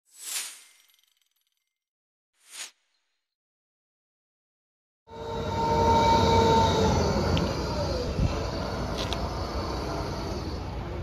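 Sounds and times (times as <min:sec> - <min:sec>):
diesel engine rumble: 0:05.1 - 0:11.0
whine sliding down in pitch: 0:05.1 - 0:11.0.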